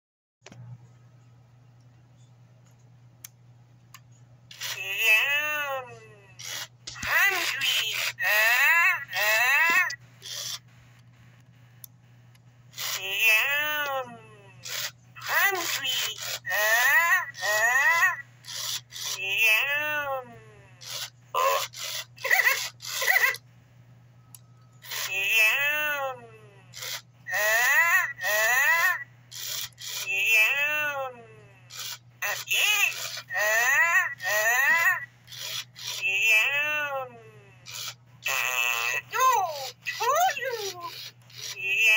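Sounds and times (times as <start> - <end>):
electronic toy high-pitched call: 7.3 - 10.6, 14.6 - 20.0, 20.8 - 23.4, 26.7 - 30.9, 31.7 - 36.9, 37.6 - 41.9.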